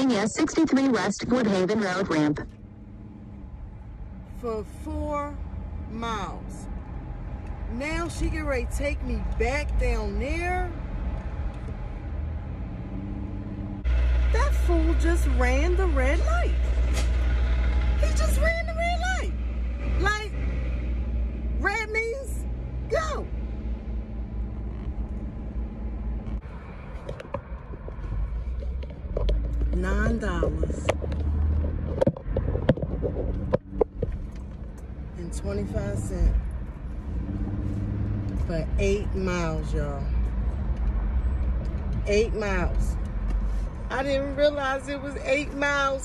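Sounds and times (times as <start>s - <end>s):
car road and engine rumble: 0.0s - 46.0s.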